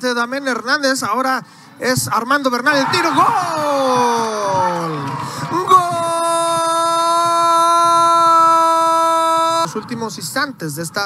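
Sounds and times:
commentator shouting goal: 2.6s - 11.0s.

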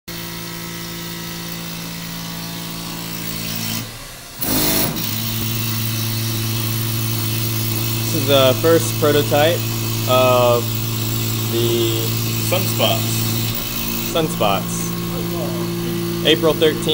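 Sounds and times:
milling machine motor hum: 0.1s - 16.9s.

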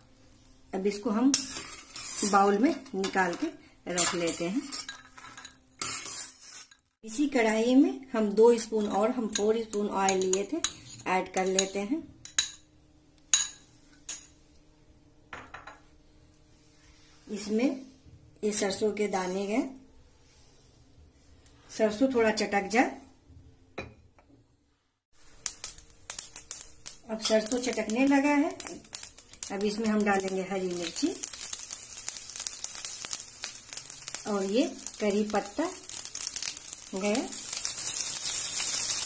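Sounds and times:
seeds crackling in hot oil: 0.0s - 7.3s, 25.1s - 39.0s
chillies sizzling in hot oil: 0.0s - 12.6s, 25.1s - 39.0s
metal spoon clinking on metal pan: 4.0s - 6.7s, 9.2s - 12.7s.

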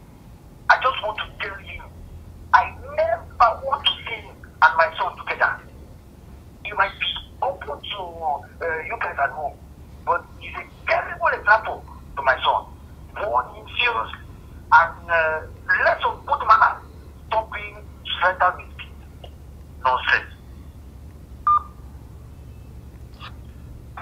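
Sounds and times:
low steady hum: 0.0s - 24.0s
speech through phone speaker: 0.7s - 1.9s, 2.5s - 5.7s, 6.7s - 19.0s, 19.8s - 20.3s
short beep: 21.5s - 21.8s.

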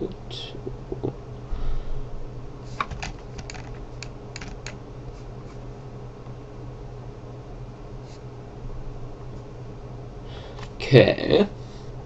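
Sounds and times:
low electrical hum: 0.0s - 12.0s
computer keyboard clicks: 2.8s - 4.8s.

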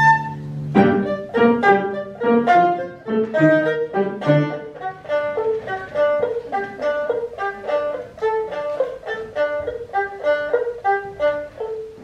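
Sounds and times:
erhu melody: 0.0s - 12.0s.

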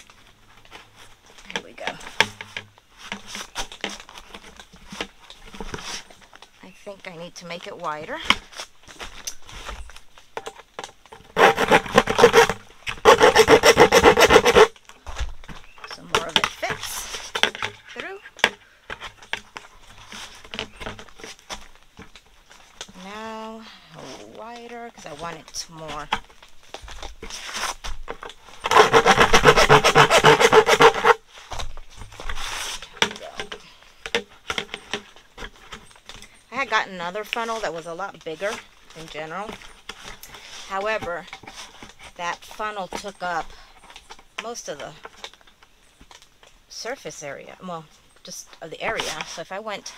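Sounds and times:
handling of plastic bucket: 0.0s - 13.1s
cutting tool rasping plastic bucket: 11.1s - 14.7s, 28.6s - 31.2s.

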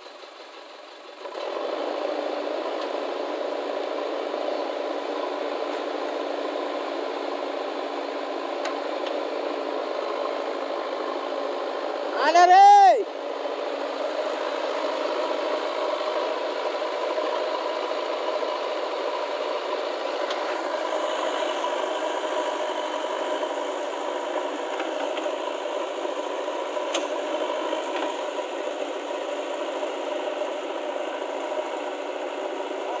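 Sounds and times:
diesel engine running under load: 0.0s - 33.0s.

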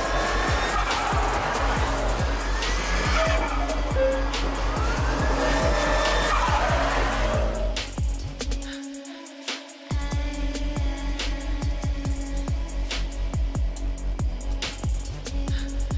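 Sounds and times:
car tyres squealing: 0.0s - 8.0s
car engine running: 0.0s - 8.2s
hip-hop music with heavy bass: 0.0s - 15.9s.

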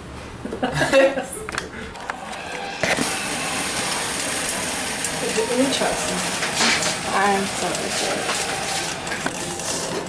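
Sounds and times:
dry ice bubbling in water: 2.7s - 10.0s.

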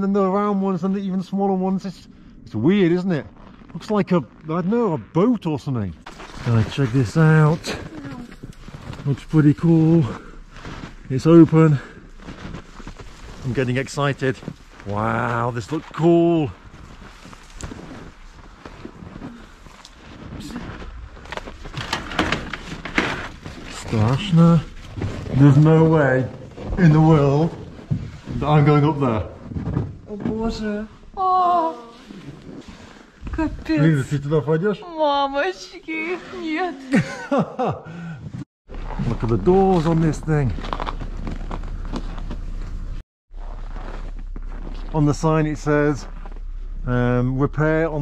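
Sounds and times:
footsteps crunching in snow: 6.0s - 28.6s, 38.7s - 46.9s.

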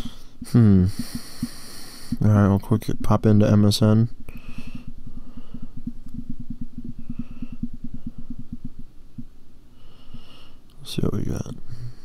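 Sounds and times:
rapid dull low thumps: 2.2s - 9.8s.

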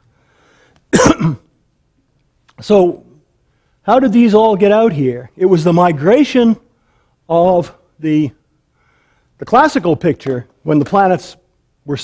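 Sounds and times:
man coughing: 0.9s - 1.6s.

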